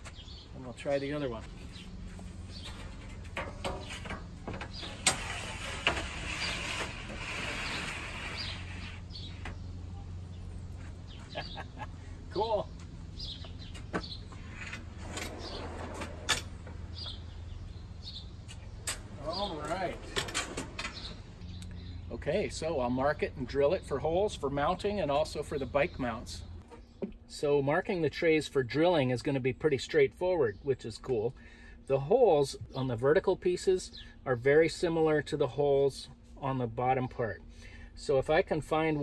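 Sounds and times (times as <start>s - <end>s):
metal sheet scraping on slides: 2.2s - 9.4s, 14.4s - 16.5s
sharp metallic clanks: 2.6s - 5.3s.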